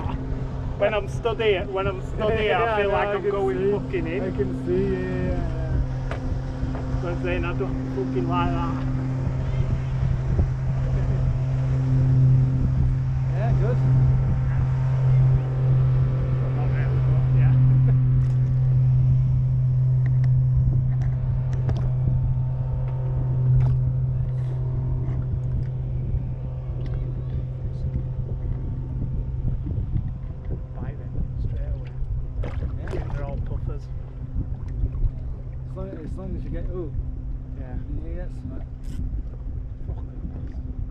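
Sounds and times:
faint voices: 0.0s - 18.8s, 23.8s - 32.0s
boat motor humming: 0.0s - 40.9s.

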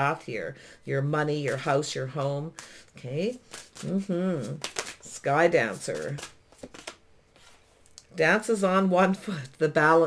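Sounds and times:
cards clicking and sliding: 5.9s - 7.0s.

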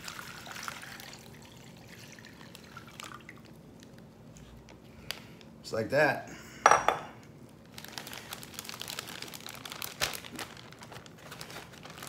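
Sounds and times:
plastic bag crinkling: 7.6s - 12.0s.

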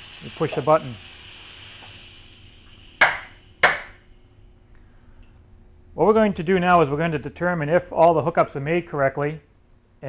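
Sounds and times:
air hissing: 0.0s - 4.2s.

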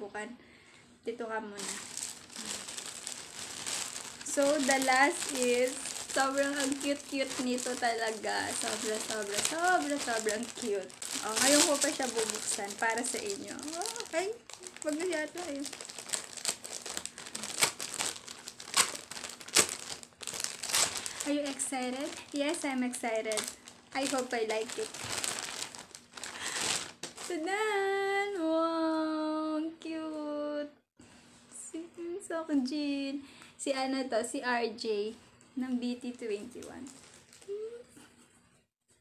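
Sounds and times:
packaging crinkling: 1.6s - 27.4s, 36.4s - 37.7s.

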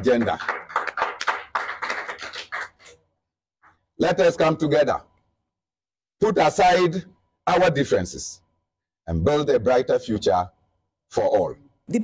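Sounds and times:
people clapping: 0.0s - 3.0s.

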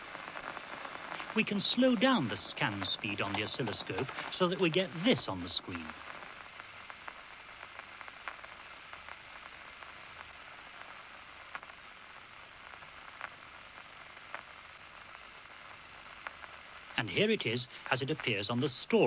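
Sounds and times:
steady static hiss: 0.0s - 19.0s
faint scattered clicks: 0.4s - 9.2s.

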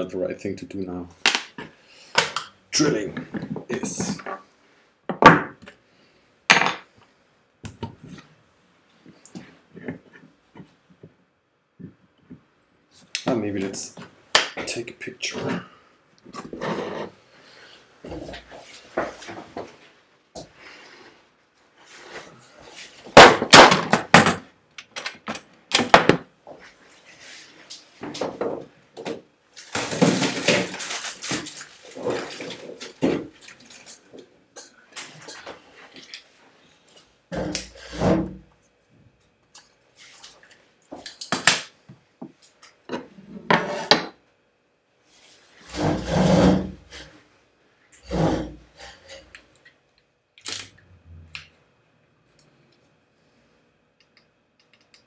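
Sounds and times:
rummaging through tools: 29.6s - 36.3s.

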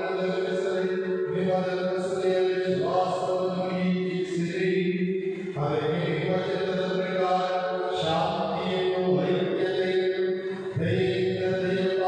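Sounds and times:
liturgical chant singing: 0.0s - 12.0s.

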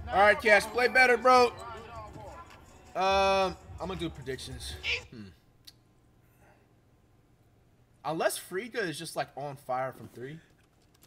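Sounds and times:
man humming hmm: 5.1s - 5.4s.

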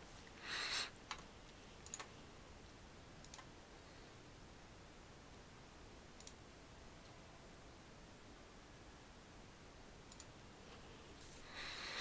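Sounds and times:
faint computer mouse clicks: 10.1s - 10.3s.

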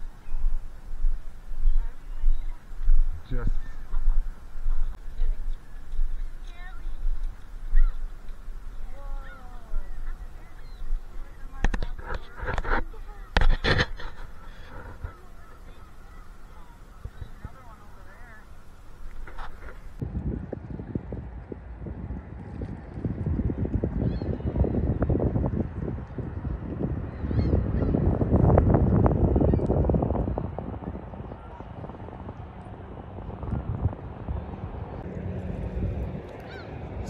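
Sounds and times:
wind buffeting microphone: 0.0s - 37.0s
faint gull calls: 5.6s - 19.6s, 36.4s - 36.8s.

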